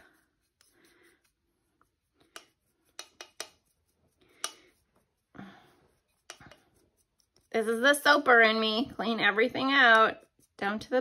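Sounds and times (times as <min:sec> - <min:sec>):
brush scraping in plastic cup: 0:00.0 - 0:11.0.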